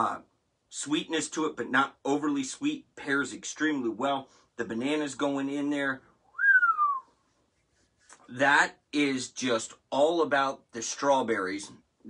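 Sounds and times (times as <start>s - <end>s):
man whistling: 6.3s - 7.2s.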